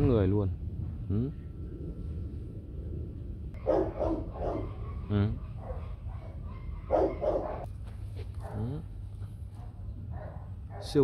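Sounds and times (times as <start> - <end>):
dogs barking: 3.6 - 7.7, 8.4 - 8.8, 9.5 - 11.0.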